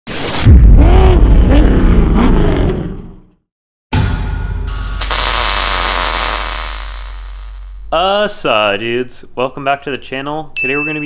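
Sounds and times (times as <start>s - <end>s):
loud burst of noise: 4.8s - 7.9s.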